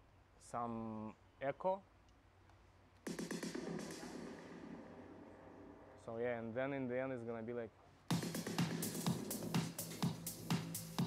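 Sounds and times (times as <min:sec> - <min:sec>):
electronic snare fill with echo: 0:03.0 - 0:06.0, 0:08.1 - 0:11.0.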